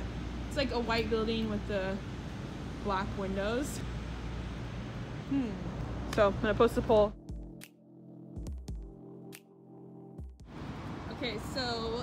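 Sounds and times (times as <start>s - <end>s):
outdoor background noise: 0.0s - 7.2s, 10.4s - 12.0s
sustained synth chords: 7.1s - 10.3s.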